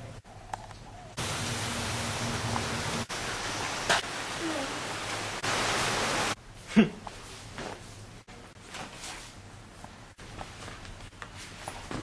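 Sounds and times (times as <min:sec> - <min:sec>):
loud steady hiss: 0:01.2 - 0:06.4.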